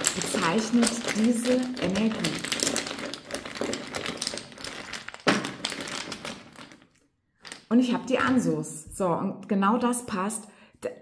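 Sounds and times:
fabric bag rustling: 0.0 - 7.6.

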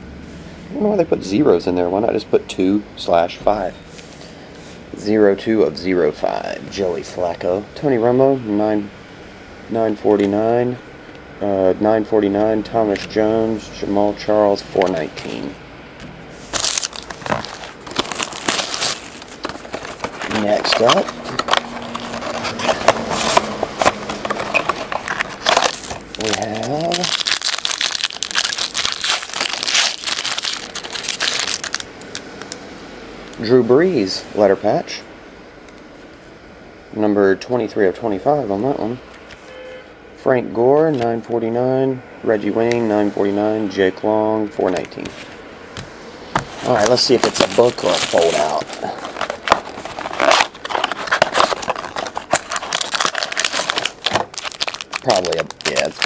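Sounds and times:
foil wrapper crinkling: 16.5 - 32.6, 46.6 - 56.0.

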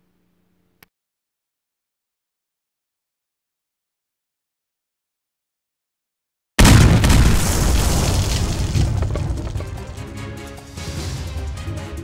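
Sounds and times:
explosion deep boom: 6.6 - 10.0
music: 9.0 - 12.0.

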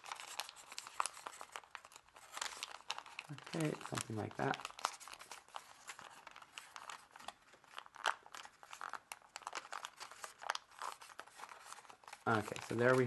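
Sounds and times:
paper crinkling: 0.0 - 13.0.

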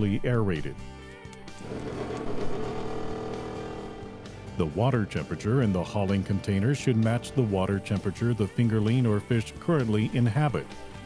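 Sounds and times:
air pump humming: 1.6 - 4.6.

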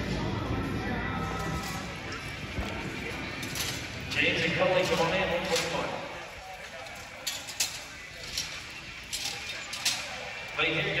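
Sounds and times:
murmur of distant voices: 0.0 - 11.0.

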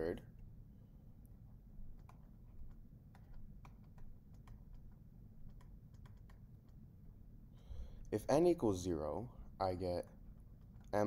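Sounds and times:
stylus tapping on tablet screen: 1.9 - 6.8.

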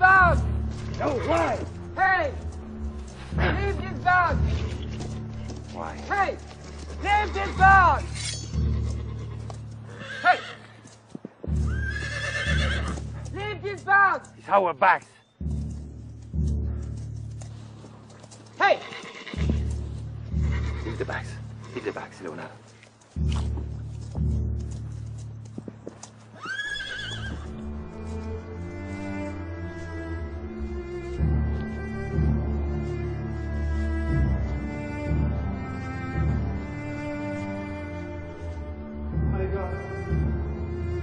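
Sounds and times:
film score music: 0.0 - 41.0
horse whinnying: 7.1 - 10.8, 11.6 - 13.2, 18.6 - 19.6, 20.4 - 21.0, 26.4 - 27.5.

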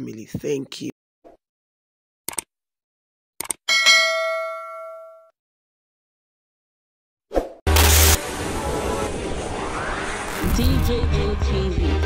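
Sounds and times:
notification bell ding: 3.7 - 5.3.

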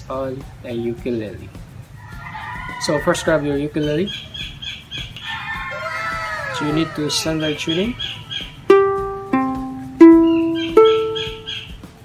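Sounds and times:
ukulele strings plucked: 8.7 - 11.5.

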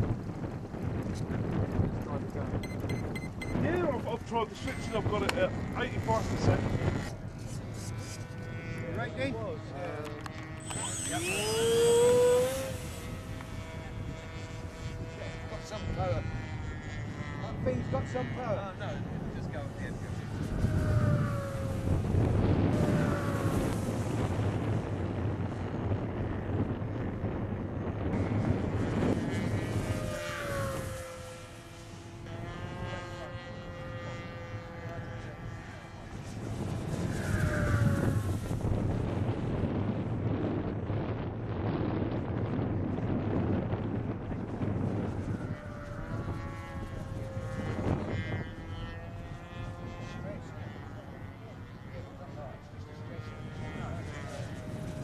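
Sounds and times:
electric model plane motor whine: 0.0 - 55.0.

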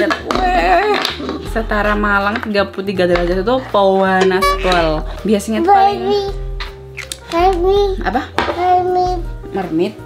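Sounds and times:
background music: 0.0 - 10.0
woman asking a question: 4.1 - 5.4.

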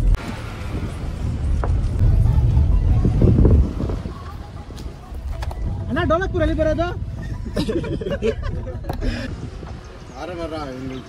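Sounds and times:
road and wind rumble in car: 0.0 - 11.0.

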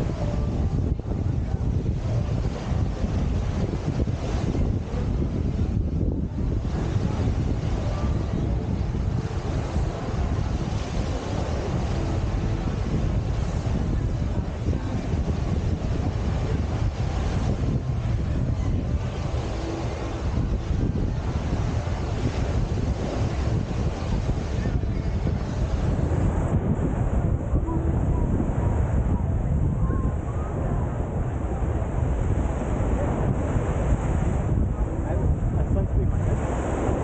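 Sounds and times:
wind buffeting microphone: 0.0 - 37.0
small waves breaking on beach: 6.3 - 27.2, 36.1 - 37.0.

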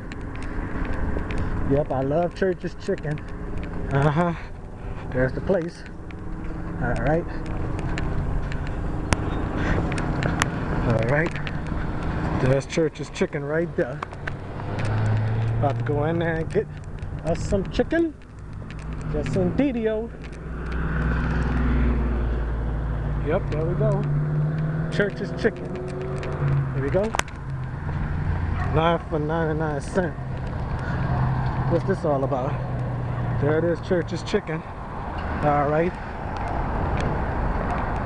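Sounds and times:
low rumble of traffic: 0.0 - 38.0
car driving past: 14.3 - 16.0, 20.4 - 28.9.

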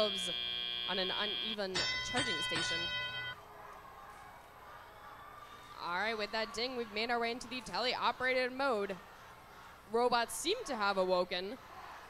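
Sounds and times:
electronic multi-tone chime: 0.0 - 3.4
gymnasium background noise: 0.0 - 12.0.

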